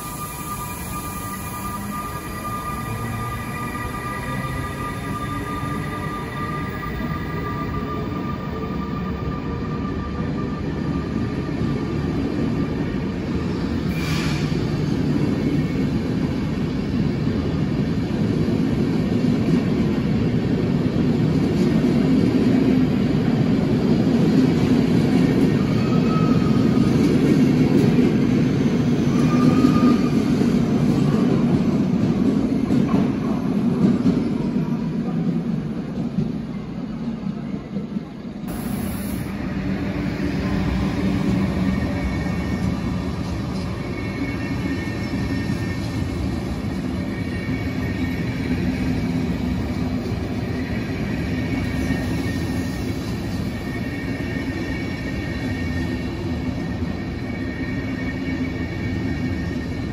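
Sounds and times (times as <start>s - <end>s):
electric locomotive whine: 0.0s - 59.9s
train wheels rumbling on rails: 0.0s - 59.9s.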